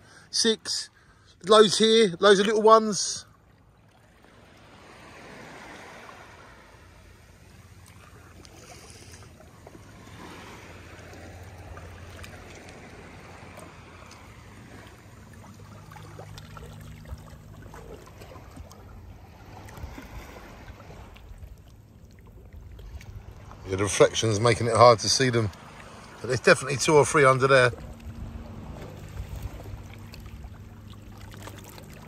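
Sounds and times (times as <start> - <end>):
seawater lapping and sloshing: 0.0 - 32.0
steady low hum: 6.5 - 32.0.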